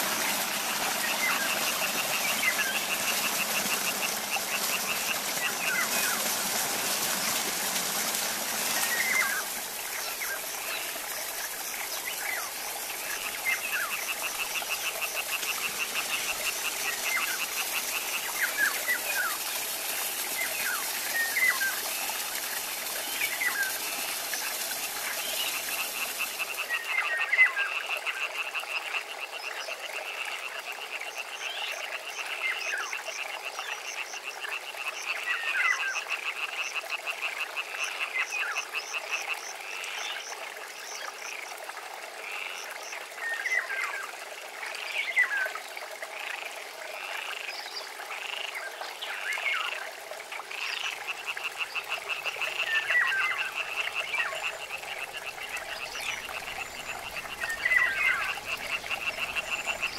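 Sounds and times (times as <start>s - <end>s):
frogs croaking: 0.0s - 59.9s
short falling frog calls: 50.6s - 59.9s.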